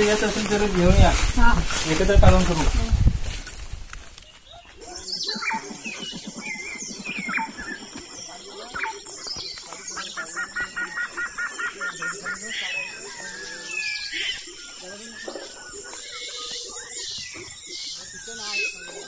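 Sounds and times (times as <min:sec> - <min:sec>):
birds chirping and whistling: 0:00.0 - 0:19.0.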